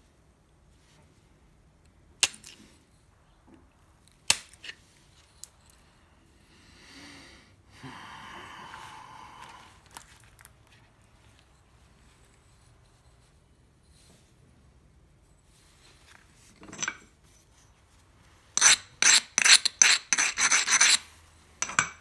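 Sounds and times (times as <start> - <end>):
scraping rasp on stone: 18.6 - 21.9.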